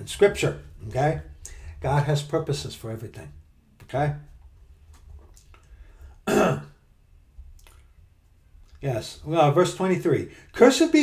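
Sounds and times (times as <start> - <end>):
man clearing throat: 6.2 - 6.8.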